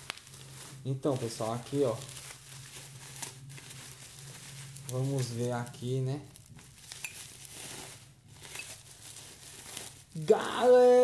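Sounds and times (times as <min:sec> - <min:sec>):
bubble wrap crinkling: 0:00.0 - 0:11.0.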